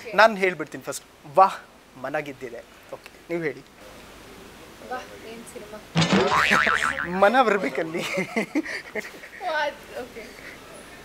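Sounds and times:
person laughing with warbling pitch: 6.2 - 7.6.

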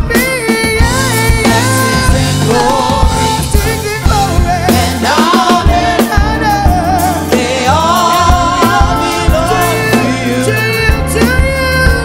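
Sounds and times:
drum hits: 0.0 - 12.0
live band with bass: 0.0 - 12.0
group singing gospel song: 0.2 - 12.0.

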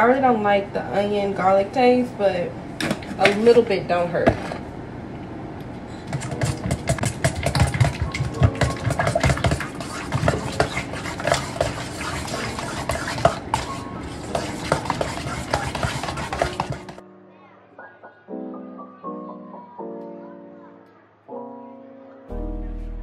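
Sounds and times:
utensil clinking against metal bowl: 6.0 - 17.0.

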